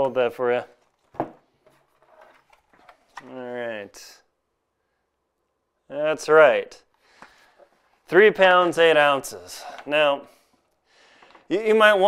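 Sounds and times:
person speaking: 3.2s - 4.3s, 8.0s - 10.4s, 11.5s - 12.0s.

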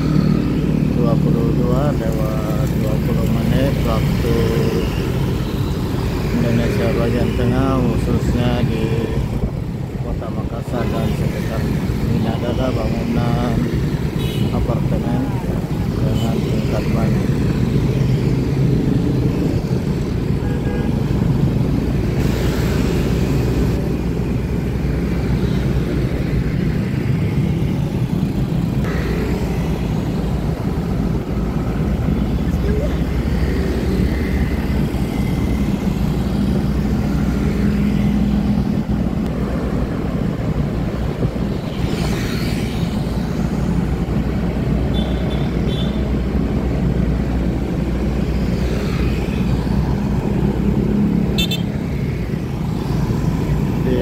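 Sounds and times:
city traffic: 0.0s - 54.0s
moving vehicle rumble: 0.0s - 54.0s.

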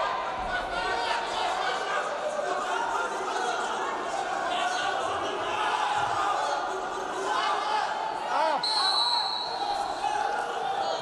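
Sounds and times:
crowd and coaches voices: 0.0s - 11.0s
high referee whistle: 8.6s - 9.8s.

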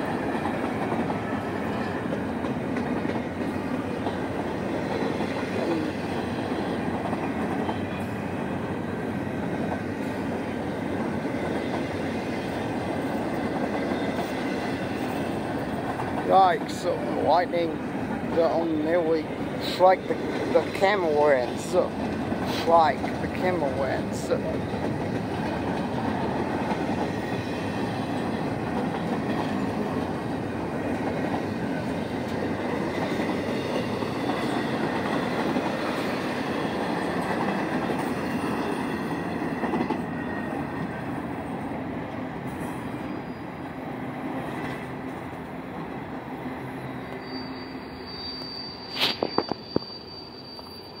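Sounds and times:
freight train wheels on rail: 0.0s - 51.0s
high squeal: 43.0s - 43.6s, 47.1s - 51.0s.

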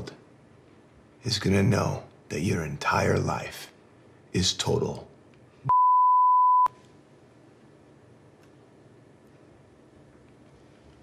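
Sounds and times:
censor bleep: 5.7s - 6.8s.

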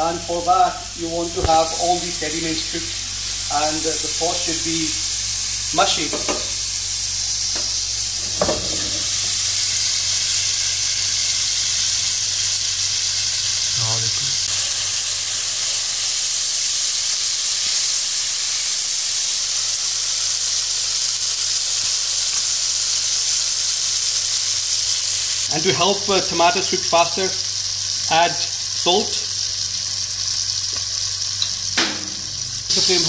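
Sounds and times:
onions and tomatoes sizzling in oil: 0.0s - 33.0s.

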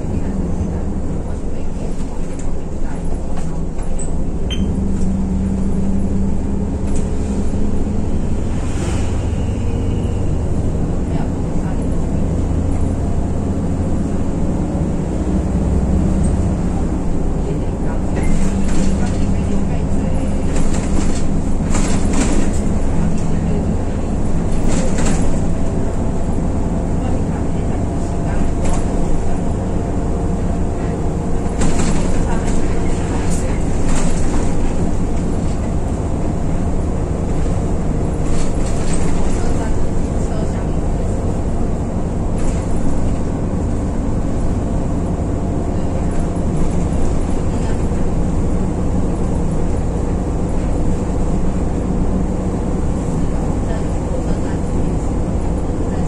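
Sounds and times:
bus engine drone: 0.0s - 56.0s
road noise: 0.0s - 56.0s.

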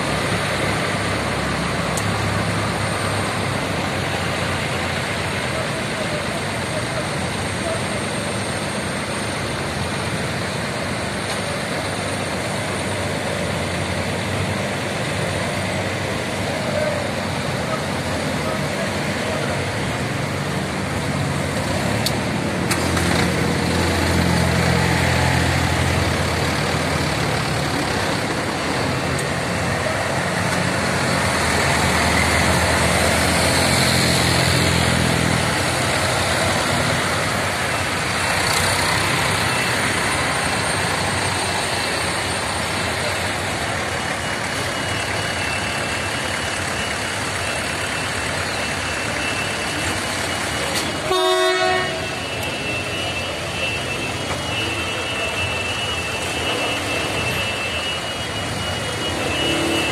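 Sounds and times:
tractor diesel engines running: 0.0s - 59.9s
short horn toot: 50.8s - 55.4s.

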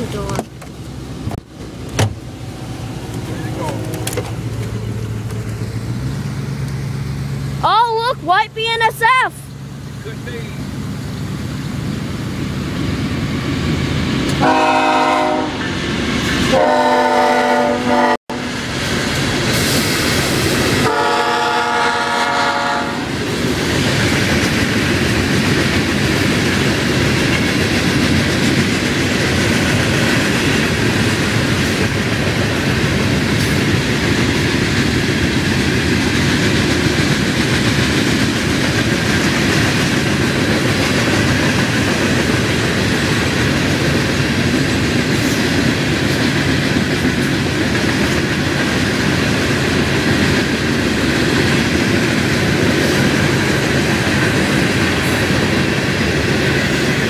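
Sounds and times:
freight cars rumbling and clattering: 0.0s - 14.4s, 23.1s - 57.0s
train horn blasts: 14.4s - 15.7s, 16.5s - 18.5s, 20.8s - 23.1s.

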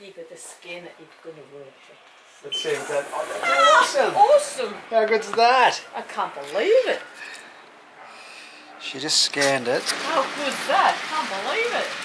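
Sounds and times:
man speaking: 2.4s - 4.2s, 8.8s - 9.9s
breathy exhale: 7.2s - 8.7s.

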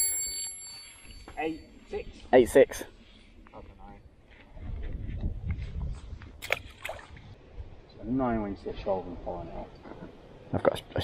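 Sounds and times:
wind rumbling on microphone: 3.3s - 8.0s
fish splashing into water: 6.4s - 7.2s.

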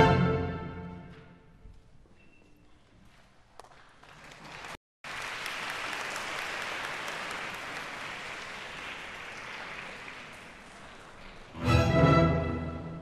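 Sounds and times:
audience applauding: 3.6s - 11.6s.

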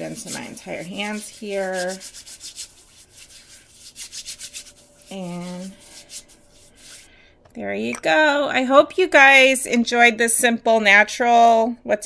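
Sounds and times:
hands rubbing together: 0.0s - 7.1s.

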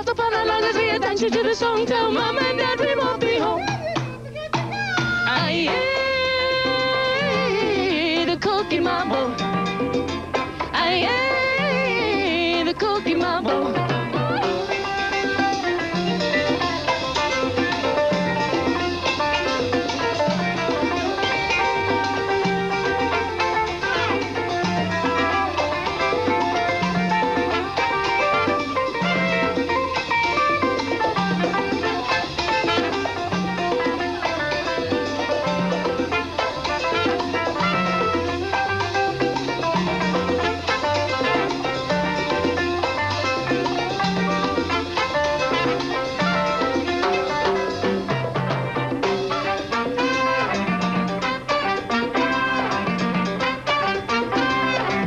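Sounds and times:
latin band playing: 0.0s - 55.0s.

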